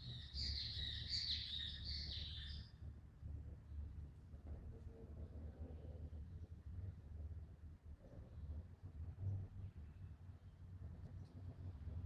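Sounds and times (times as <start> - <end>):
small bird chirping: 0.0 - 2.6.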